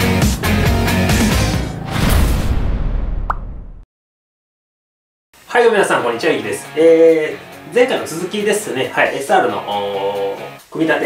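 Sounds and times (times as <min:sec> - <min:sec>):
intro music: 0:00.0 - 0:01.9.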